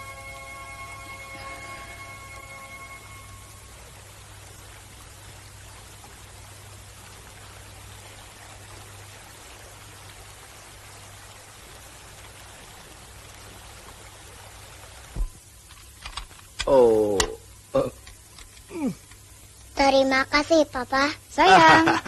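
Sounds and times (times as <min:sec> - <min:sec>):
held music chord: 0:00.0 - 0:05.0
film soundtrack hiss and hum: 0:00.0 - 0:22.0.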